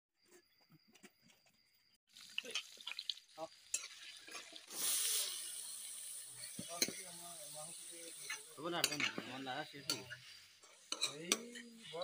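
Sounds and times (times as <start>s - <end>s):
food frying in hot oil: 2.1s - 12.0s
metal spoon scraping wok: 3.7s - 7.1s, 7.8s - 12.0s.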